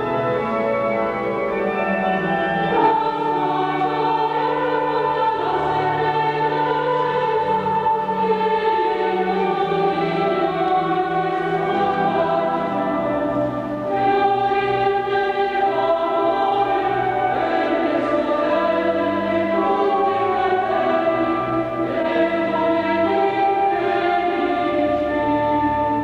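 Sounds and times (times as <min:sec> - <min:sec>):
organ: 0:00.0 - 0:26.0
mixed choir singing: 0:02.2 - 0:26.0.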